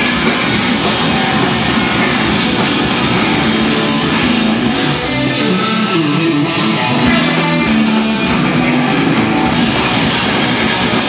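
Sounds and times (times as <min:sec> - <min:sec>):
noise rock band playing: 0:00.0 - 0:11.0.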